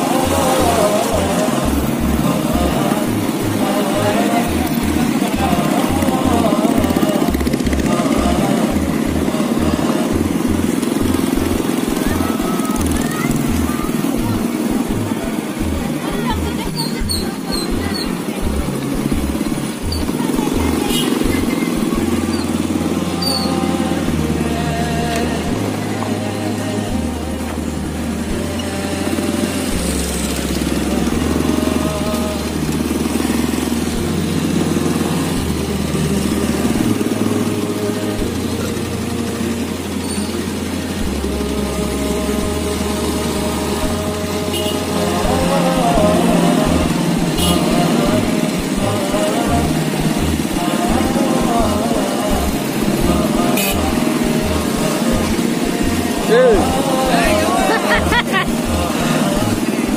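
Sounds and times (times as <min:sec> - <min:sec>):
car engine running: 0:00.0 - 0:59.9
motorcycle engine running: 0:00.0 - 0:59.9
music with deep bass line: 0:00.0 - 0:59.9
voices: 0:00.0 - 0:59.9.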